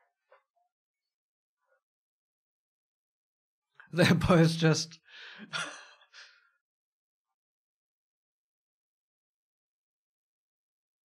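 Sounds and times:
man laughing softly: 5.4s - 6.4s.

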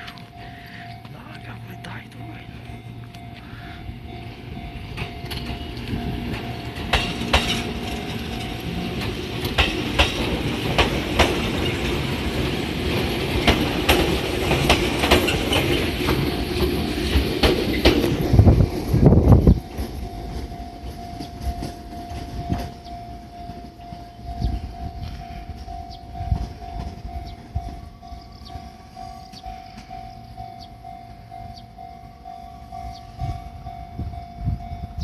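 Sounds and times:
electric train approaching: 0.0s - 35.0s
wheels clacking over rail joints: 4.3s - 28.6s.

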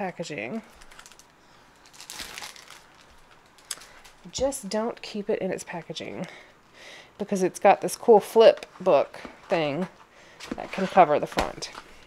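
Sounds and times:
plastic packaging crinkling: 0.5s - 4.3s.

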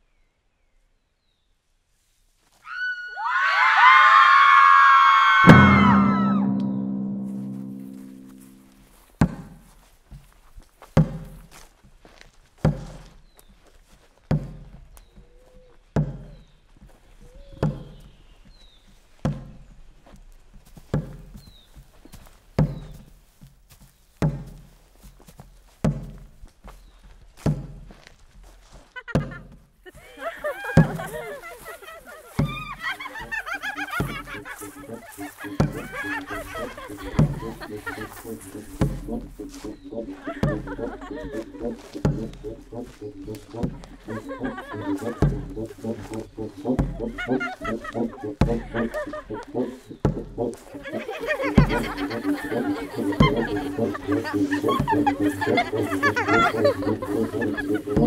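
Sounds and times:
high gliding tones: 5.4s - 8.8s, 33.4s - 49.5s
slow low drum beat: 5.4s - 9.8s, 11.0s - 11.6s, 12.7s - 13.2s, 14.3s - 14.9s, 16.0s - 16.4s, 17.4s - 18.0s, 20.9s - 21.5s, 22.6s - 23.2s, 24.2s - 26.4s, 27.5s - 28.0s, 29.2s - 29.6s, 30.7s - 31.4s, 32.4s - 58.0s
deep booming hit: 5.5s - 8.6s.

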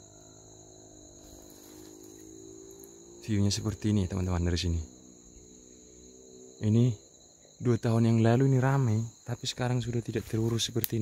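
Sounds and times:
faint low hum: 0.0s - 11.0s
shrill insect chorus: 0.0s - 11.0s.

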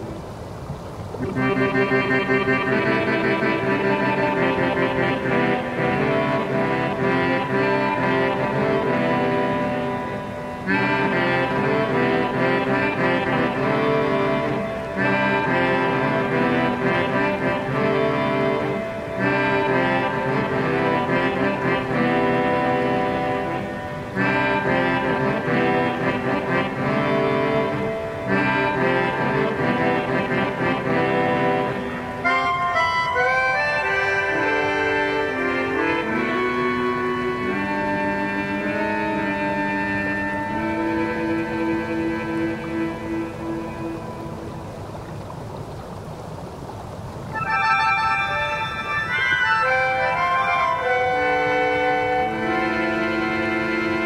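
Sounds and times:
low steady drone: 0.0s - 54.0s
melodica playing reed chords: 1.2s - 44.1s, 47.4s - 54.0s.

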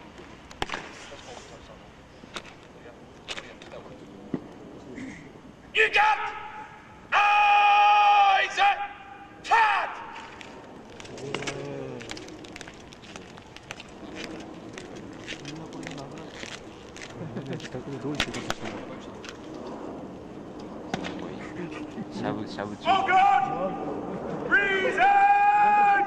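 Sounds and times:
drill commands shouted: 5.7s - 10.2s, 22.8s - 23.8s, 24.5s - 26.0s.

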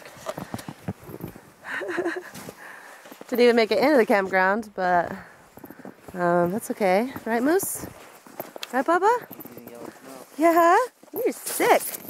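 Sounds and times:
tent canvas rustling: 0.0s - 12.0s
crunching in deep snow: 2.0s - 12.0s.

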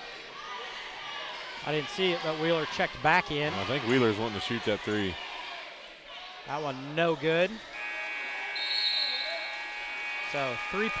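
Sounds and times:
referee's whistle: 7.7s - 11.0s
scoreboard buzzer long tone: 7.7s - 11.0s.

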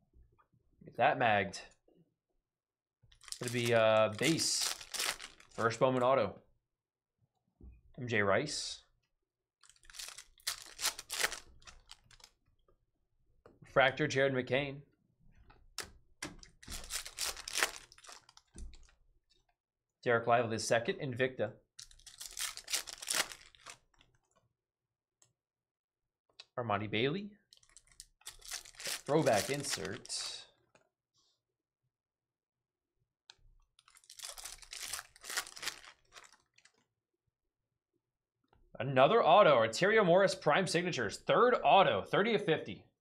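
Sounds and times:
trading cards rustling: 3.2s - 5.8s, 9.6s - 12.3s, 16.6s - 18.5s, 21.8s - 23.8s, 27.6s - 30.2s, 33.8s - 36.7s.

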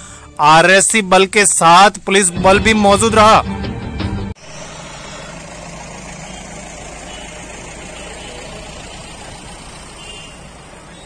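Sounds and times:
motor traffic running: 4.4s - 11.0s.

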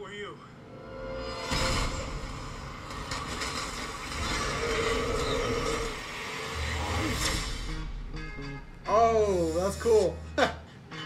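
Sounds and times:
action sound effects: 0.7s - 10.0s
low music: 6.6s - 11.0s.

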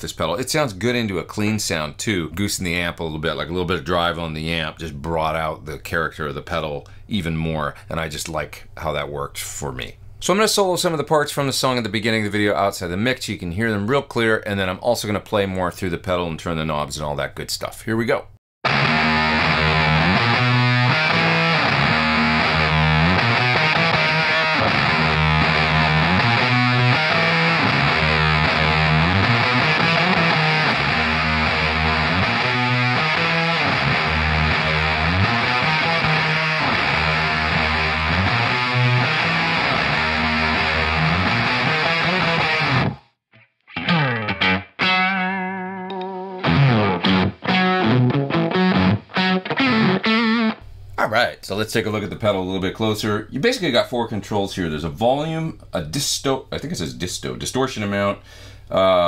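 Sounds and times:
fuzz-distorted electric guitar chords: 18.6s - 50.6s.

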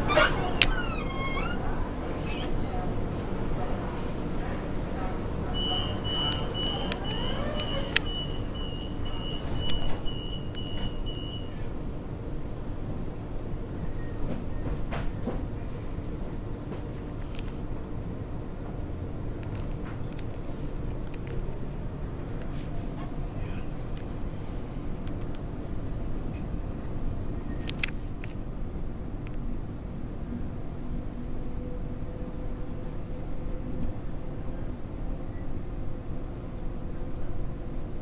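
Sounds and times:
train carriage rumble and hum: 0.0s - 38.0s
door-closing warning beeps: 5.6s - 11.6s.

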